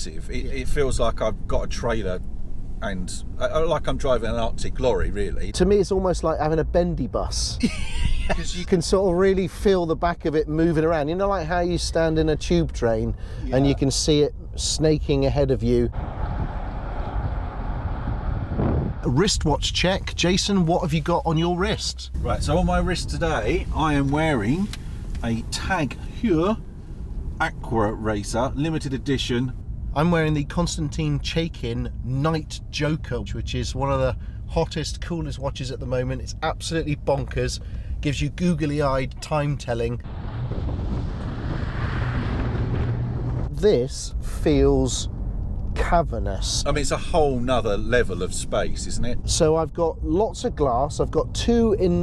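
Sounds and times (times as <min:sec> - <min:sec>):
car road noise: 0:00.0 - 0:52.0
wind rumbling on microphone: 0:15.9 - 0:20.8, 0:39.9 - 0:49.3
lorry passing: 0:40.0 - 0:44.3.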